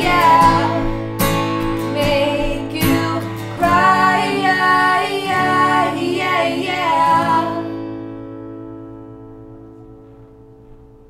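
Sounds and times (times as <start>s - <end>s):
man and woman singing: 0.0s - 7.9s
strummed acoustic guitar: 0.0s - 11.0s.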